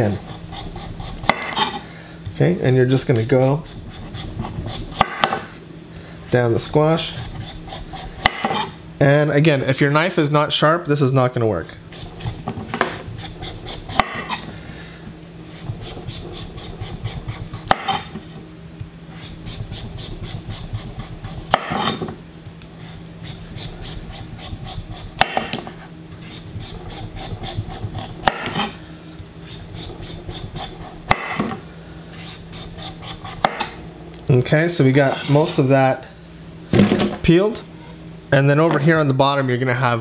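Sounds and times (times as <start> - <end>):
knife scraping squash skin: 0.0 - 1.9, 2.9 - 5.2, 6.4 - 8.8, 11.9 - 14.5, 15.5 - 18.4, 19.1 - 22.1, 22.7 - 25.3, 26.1 - 28.8, 29.4 - 31.3, 32.2 - 33.7.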